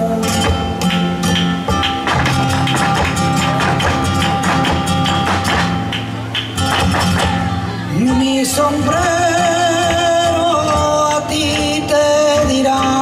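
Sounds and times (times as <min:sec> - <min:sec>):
flamenco guitar playing: 0:00.0 - 0:13.0
sharp percussive clicks: 0:00.4 - 0:07.4.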